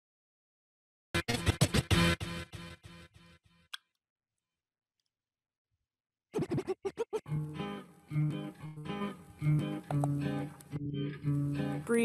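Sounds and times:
music with plucked melody: 0:01.2 - 0:03.0, 0:07.3 - 0:12.0.

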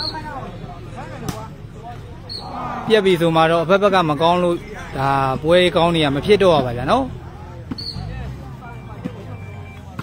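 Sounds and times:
spectator chatter: 0:00.0 - 0:10.0.

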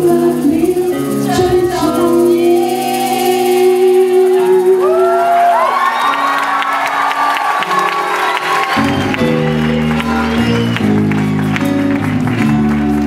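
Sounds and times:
guitars and bass playing: 0:00.0 - 0:06.7, 0:07.6 - 0:13.0
live band playing: 0:00.0 - 0:13.0
audience whooping and cheering: 0:04.5 - 0:13.0
audience applauding: 0:04.8 - 0:13.0.

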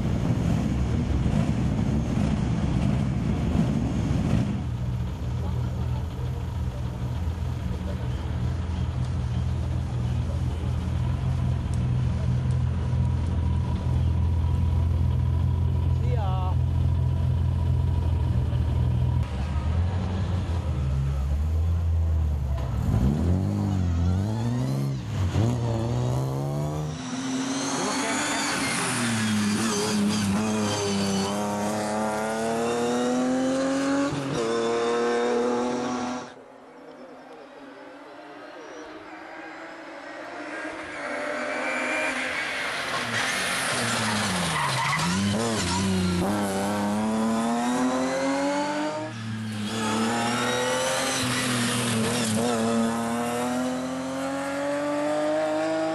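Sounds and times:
rally car engine revving: 0:22.6 - 0:36.4, 0:39.5 - 0:55.9.

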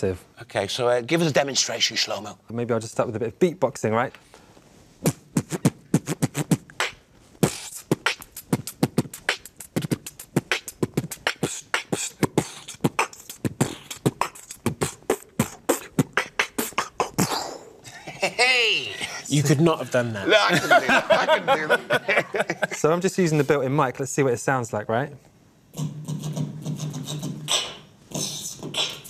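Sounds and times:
human beatboxing: 0:05.0 - 0:17.8, 0:25.7 - 0:29.0
wavering pitched voice sound: 0:25.8 - 0:29.0.

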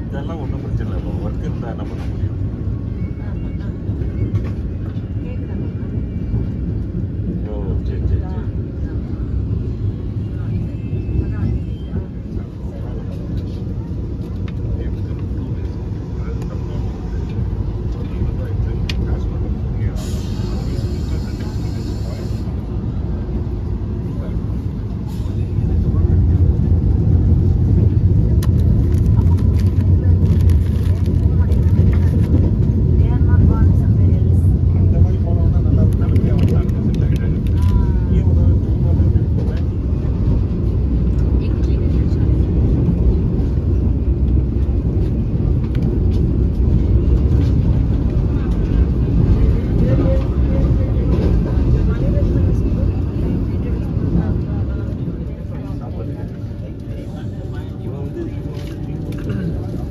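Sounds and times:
electric train rumbling: 0:00.0 - 0:59.9.

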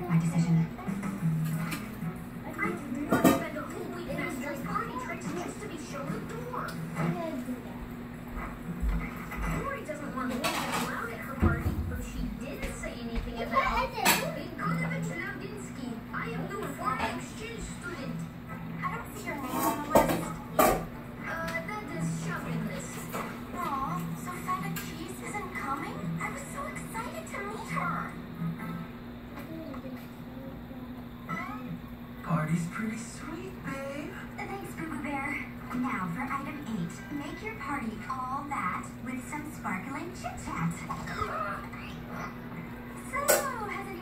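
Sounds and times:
cartoon children's voices on television: 0:00.0 - 0:28.4, 0:29.1 - 0:44.0.

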